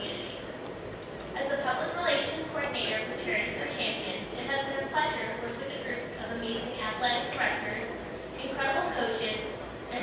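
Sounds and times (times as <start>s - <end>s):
woman speaking over pa system: 0.0s - 0.5s, 1.3s - 10.0s.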